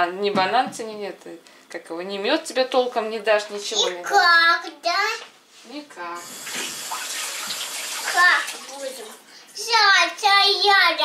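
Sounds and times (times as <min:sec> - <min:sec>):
running water: 0:06.2 - 0:09.3.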